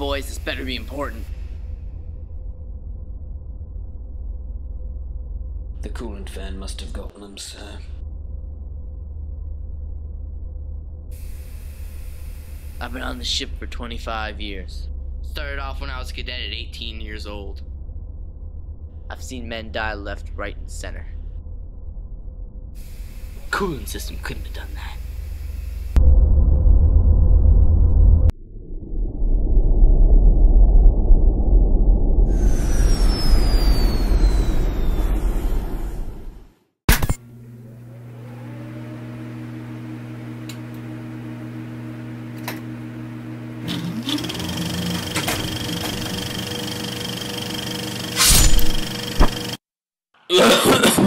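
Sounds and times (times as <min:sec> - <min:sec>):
low hum with held tones: 0:00.0 - 0:26.0
deep rumbling spaceship engine: 0:00.0 - 0:36.5
falling whine: 0:08.0 - 0:36.5.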